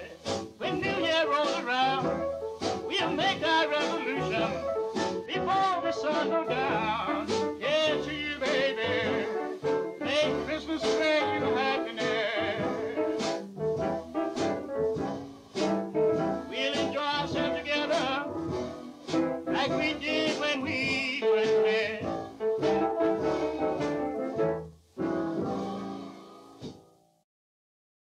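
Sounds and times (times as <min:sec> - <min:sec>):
blues band with horns: 0:00.0 - 0:26.8.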